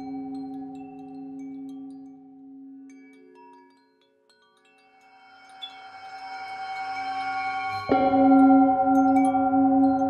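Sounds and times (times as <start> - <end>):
wind chimes tinkling: 0.0 - 10.0
singing bowl ringing: 4.8 - 10.0.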